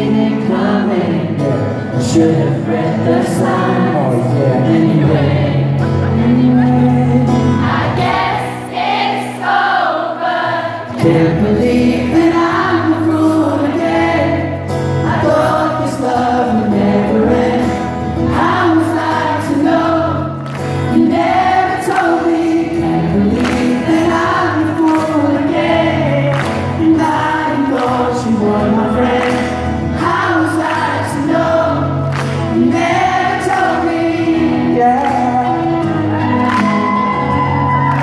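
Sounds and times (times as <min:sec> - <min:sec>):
live band playing pop ballad: 0:00.0 - 0:08.4, 0:10.9 - 0:38.0
crowd singing along: 0:00.0 - 0:38.0.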